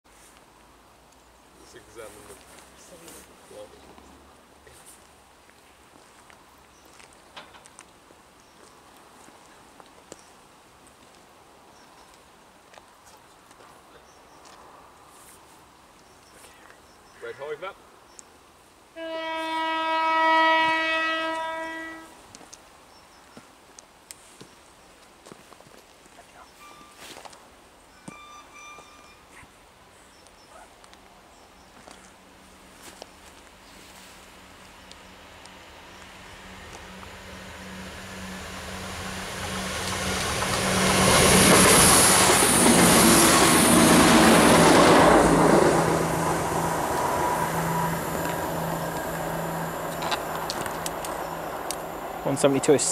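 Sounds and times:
diesel train passing: 19.0 - 22.2, 33.6 - 52.9
train high hiss: 19.0 - 22.2, 35.1 - 52.9
train horn single tone: 19.0 - 22.2, 26.6 - 27.2, 28.0 - 29.4, 46.9 - 50.5
wheels on rails: 34.7 - 52.9.

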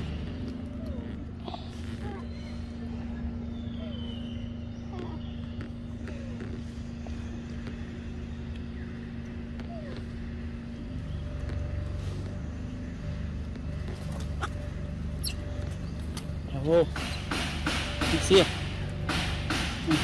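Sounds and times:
low motor hum: 0.0 - 20.0.

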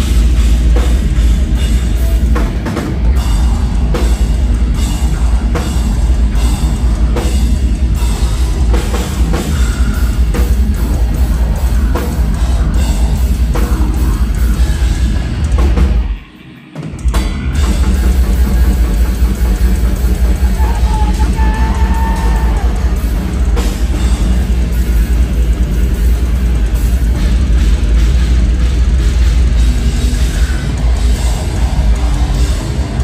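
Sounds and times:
bass: 0.0 - 33.0
distorted guitars: 0.0 - 33.0
drum kit: 0.0 - 33.0
heavy metal band playing: 0.0 - 33.0.

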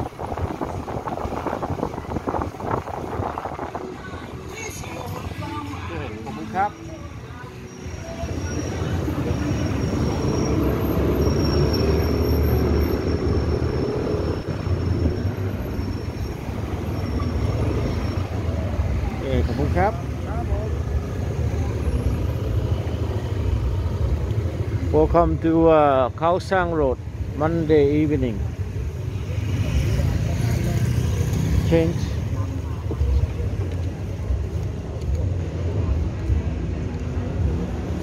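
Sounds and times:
motorcycle engine and wind rumble: 0.0 - 5.6.

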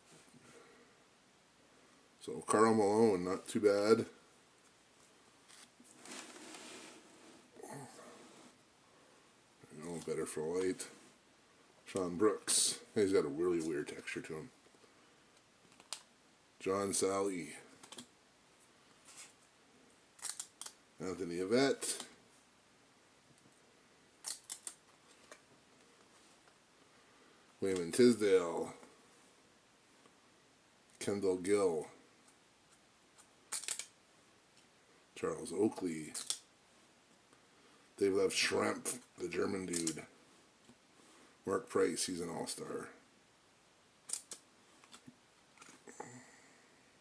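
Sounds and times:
cards being shuffled: 5.4 - 7.1, 20.2 - 20.8, 24.2 - 25.4, 33.2 - 34.0, 36.1 - 36.4, 44.1 - 45.8.

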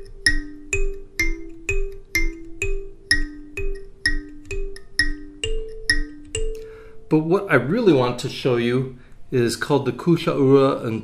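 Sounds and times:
kalimba plucked riff: 0.0 - 7.2.

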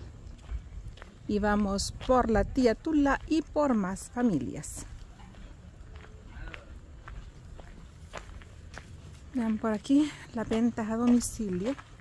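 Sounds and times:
faint low rumble: 0.0 - 10.4
footsteps crunching on dirt road: 0.0 - 12.0.

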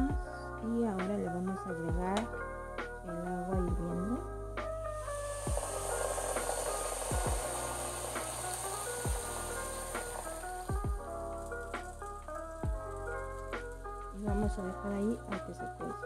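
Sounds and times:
background piano music: 0.0 - 16.0
water pouring into pot: 5.0 - 13.8.

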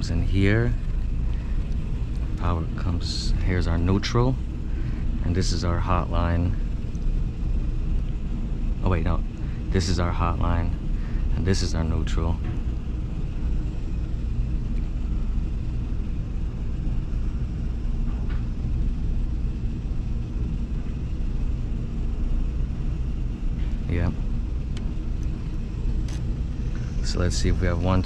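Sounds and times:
steady low rumble: 0.0 - 28.0.

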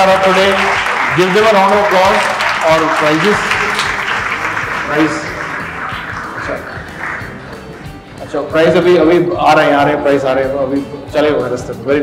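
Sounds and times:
audience applause: 0.0 - 8.0.

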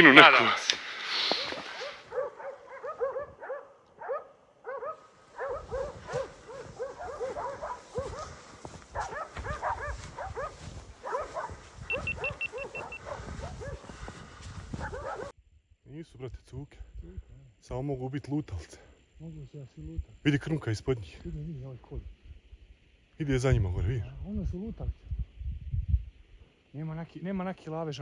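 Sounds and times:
dogs barking and yelping: 1.4 - 15.4.

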